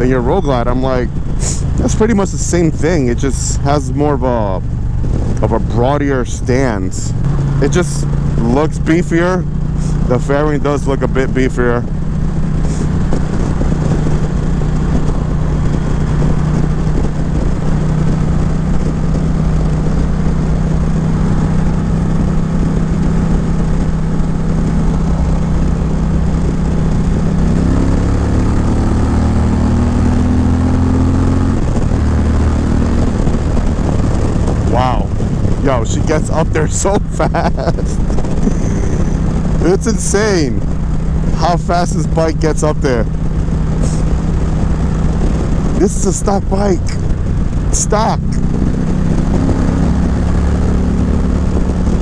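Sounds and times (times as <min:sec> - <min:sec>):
motorcycle engine running: 0:00.0 - 0:52.0.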